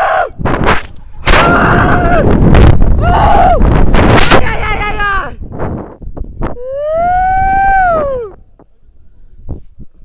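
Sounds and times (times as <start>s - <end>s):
wind on microphone: 0.0s - 10.0s
person yelling: 4.3s - 5.4s.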